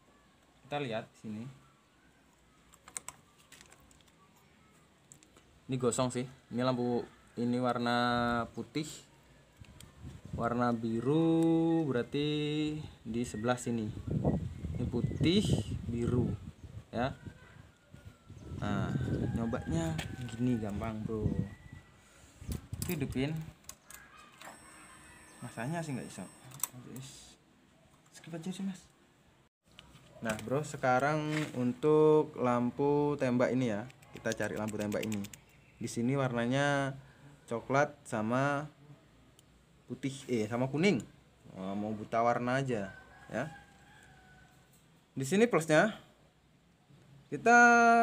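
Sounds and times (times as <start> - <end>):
plastic connectors clicking and rattling: 2.7 - 4.2
handling noise of wiring connectors: 2.7 - 5.5, 19.8 - 21.0, 22.4 - 24.9, 29.7 - 31.6, 33.8 - 35.6.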